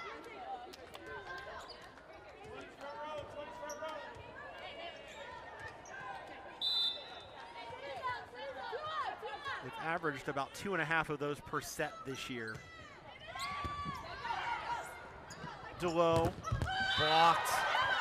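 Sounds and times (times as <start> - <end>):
referee's whistle: 6.6 - 7.4, 16.8 - 17.4.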